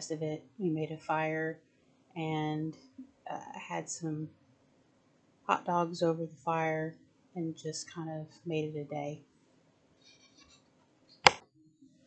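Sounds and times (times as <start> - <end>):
sharp click: 11.2 - 11.4.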